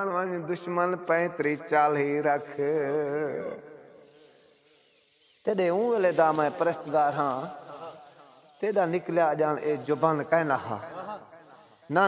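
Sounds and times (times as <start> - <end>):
man singing with vibrato: 0.0 - 4.0.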